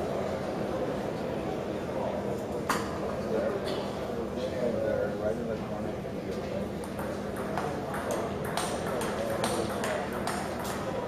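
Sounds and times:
murmur of spectators' voices: 0.0s - 11.0s
table tennis ball clicks: 6.8s - 10.9s.

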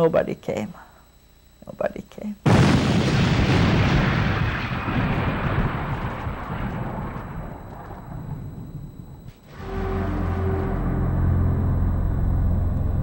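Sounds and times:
explosion boom rumble: 2.5s - 13.0s
low sustained music: 9.5s - 13.0s.

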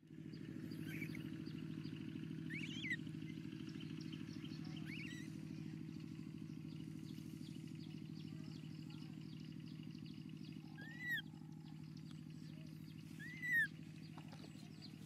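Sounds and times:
engine running steadily: 0.0s - 15.0s
bird chirps: 0.2s - 15.0s.

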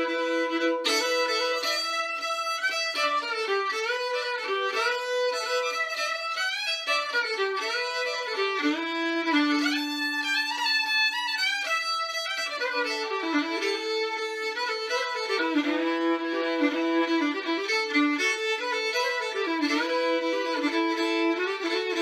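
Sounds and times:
solo fiddle tune with drone: 0.0s - 22.0s.

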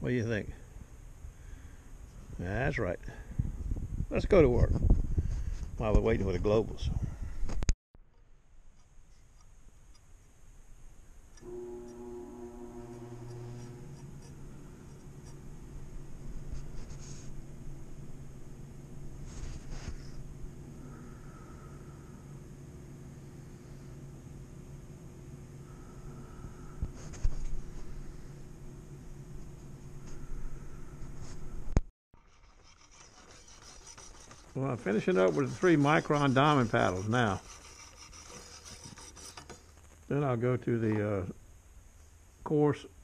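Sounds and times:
steady low hum: 8.3s - 43.0s
knife scrapes and clicks: 32.2s - 39.7s.

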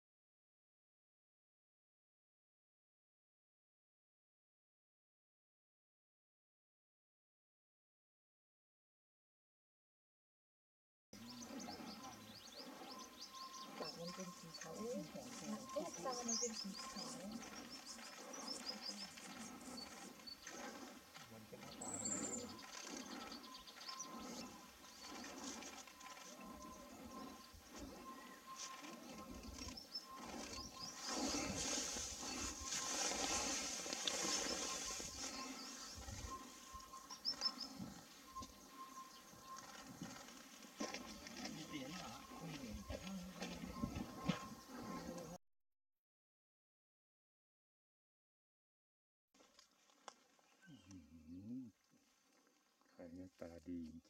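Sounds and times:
small birds chirping: 11.2s - 45.4s, 50.4s - 51.7s.

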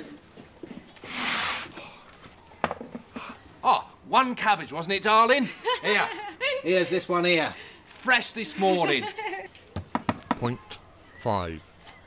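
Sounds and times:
brief rushing hiss: 1.0s - 1.8s.

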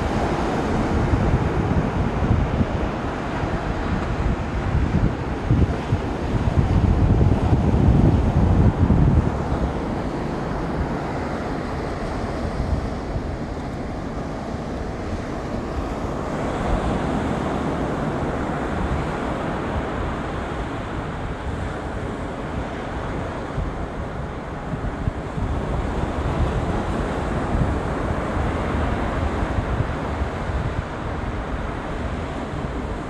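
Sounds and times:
ocean surf washing onto beach: 0.0s - 33.0s
wind buffeting microphone: 0.0s - 33.0s.

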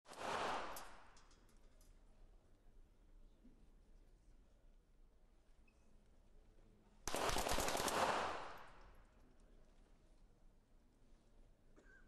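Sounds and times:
pistol shots: 0.1s - 1.1s, 7.1s - 8.8s.

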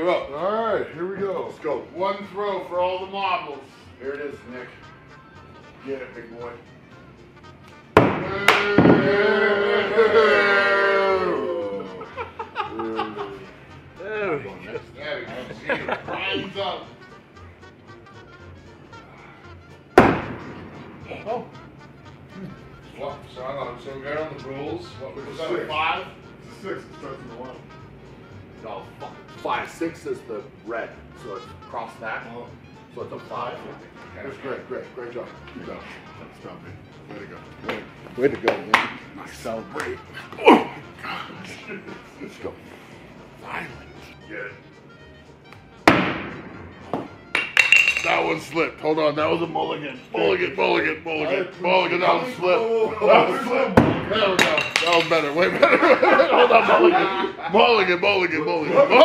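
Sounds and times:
hatchet hitting wooden target: 45.9s - 46.3s.

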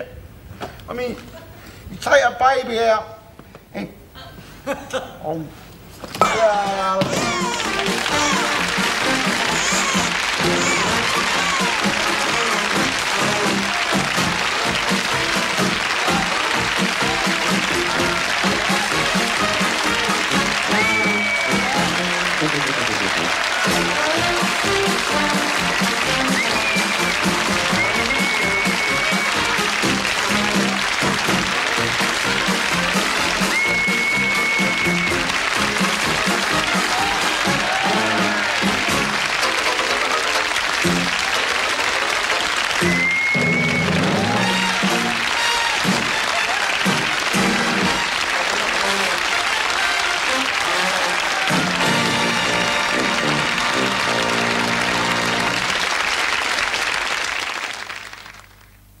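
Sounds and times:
studio audience applause: 6.2s - 59.0s
sitcom theme music: 6.3s - 56.0s.

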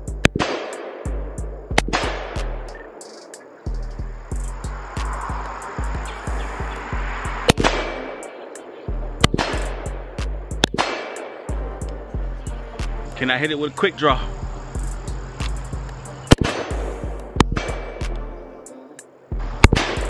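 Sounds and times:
hip-hop beat with bass: 0.0s - 20.0s
rifle gunshots: 0.2s - 1.1s, 7.5s - 8.2s, 9.2s - 9.6s, 10.6s - 11.5s, 16.3s - 16.8s.

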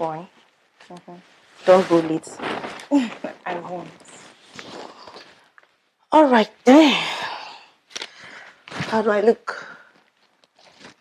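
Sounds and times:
woman speaking: 0.0s - 0.3s, 0.9s - 4.2s, 6.1s - 7.6s, 8.8s - 9.8s.

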